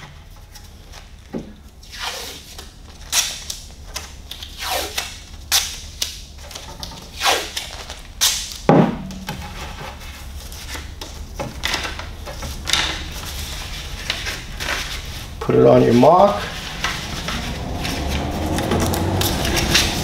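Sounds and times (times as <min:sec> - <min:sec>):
tape ripping: 0:01.8 - 0:08.7, 0:16.6 - 0:20.0.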